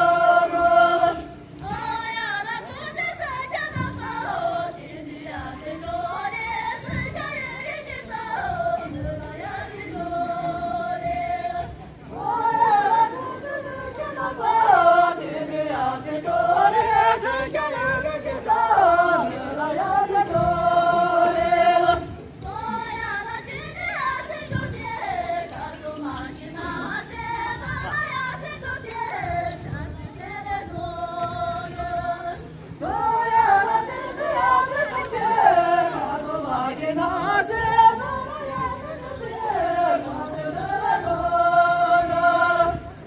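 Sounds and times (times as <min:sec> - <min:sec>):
group of voices singing in unison: 0:00.0 - 0:43.0.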